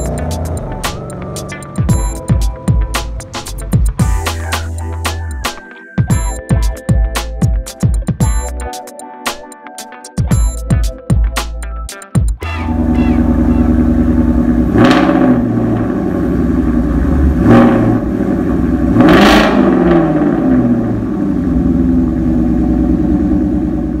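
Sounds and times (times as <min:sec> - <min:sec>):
car engines revving: 0:00.0 - 0:01.9, 0:12.6 - 0:24.0.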